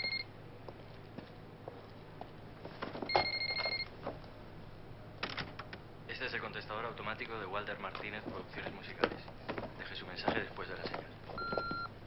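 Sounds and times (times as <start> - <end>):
electronic telephone ringing: 0.0 - 0.2, 3.1 - 3.9, 11.4 - 11.9.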